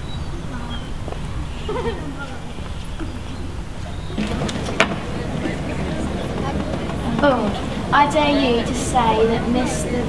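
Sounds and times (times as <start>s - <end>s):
girls talking quietly: 0.4s - 10.0s.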